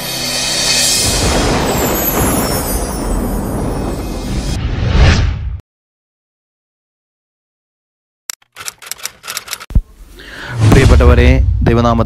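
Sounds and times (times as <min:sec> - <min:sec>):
rapid sharp clicks: 0:08.3 - 0:09.7
short deep boom: 0:10.6 - 0:12.0.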